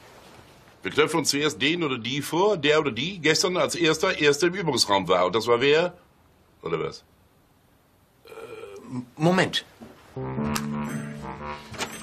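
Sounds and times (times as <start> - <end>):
person saying hesitant uh: 8.3 - 9.0, 10.2 - 11.8.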